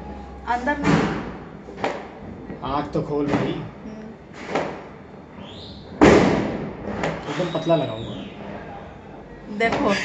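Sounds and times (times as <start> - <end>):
loud sudden bang: 6.0 - 7.6.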